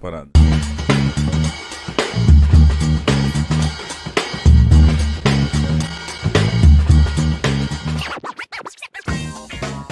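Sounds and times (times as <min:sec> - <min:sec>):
funky bass and drum groove: 0:00.4 - 0:08.1, 0:09.1 - 0:09.9
turntable scratches: 0:00.4 - 0:09.9.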